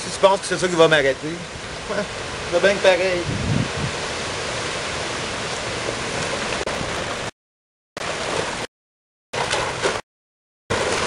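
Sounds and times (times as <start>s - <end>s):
storm rushing noise: 6.6s - 7.3s.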